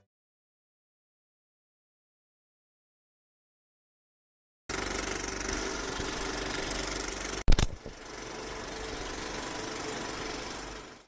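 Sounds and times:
film projector rattle: 0:04.7 - 0:11.0.

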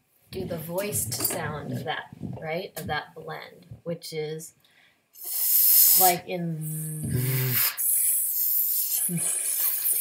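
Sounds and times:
breath hissing between teeth: 0:05.2 - 0:10.0.

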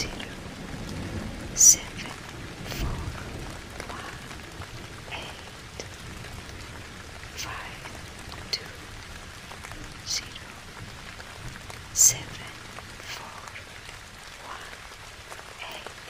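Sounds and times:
steady rain falling: 0:00.0 - 0:16.0.

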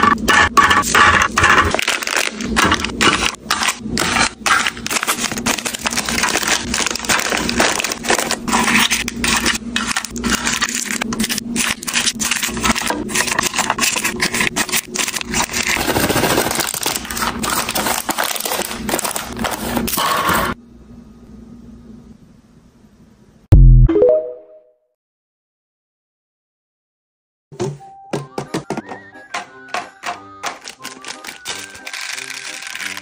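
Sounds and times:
plastic snack packets crinkling: 0:01.4 - 0:20.0, 0:30.0 - 0:33.0.

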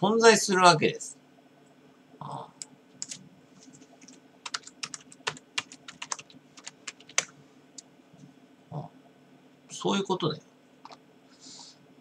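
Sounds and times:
laptop keyboard typing: 0:03.0 - 0:07.3.

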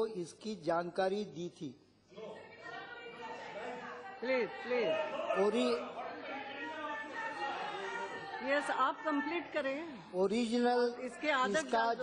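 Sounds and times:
hubbub of voices: 0:02.1 - 0:12.0.

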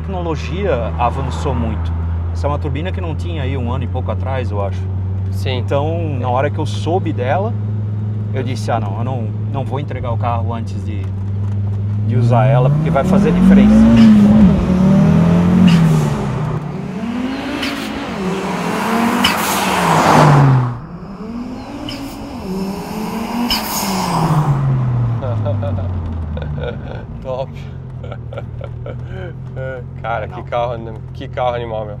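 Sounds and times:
car engine accelerating hard: 0:00.4 - 0:32.0.

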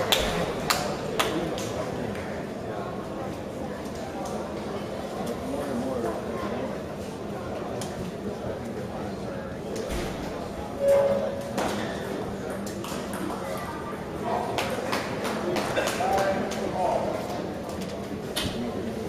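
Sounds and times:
murmur of spectators: 0:00.0 - 0:19.0
short squeak: 0:10.8 - 0:11.5.

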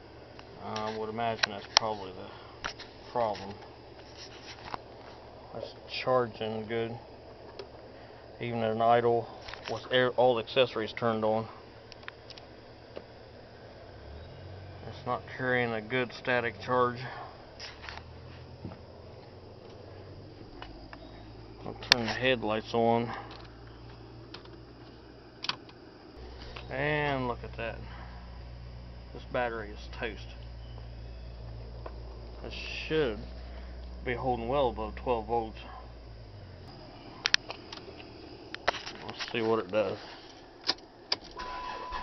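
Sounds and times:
steady background hum: 0:00.0 - 0:42.0.

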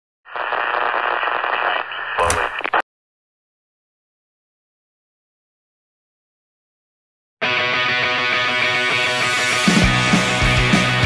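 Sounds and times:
radio static hiss: 0:00.3 - 0:02.8.

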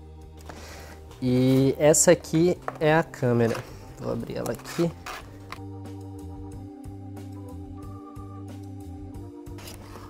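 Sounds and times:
organ-like keyboard chords: 0:05.6 - 0:09.6.

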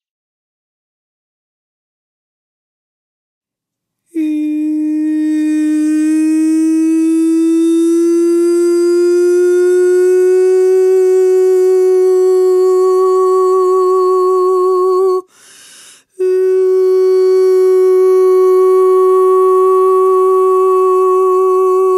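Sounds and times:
woman singing long note: 0:04.1 - 0:15.3, 0:16.2 - 0:21.9.

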